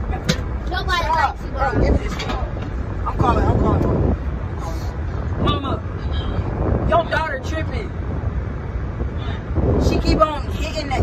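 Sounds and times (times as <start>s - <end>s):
steady low rumble: 0.0s - 11.0s
children exclaiming and talking: 0.6s - 2.1s.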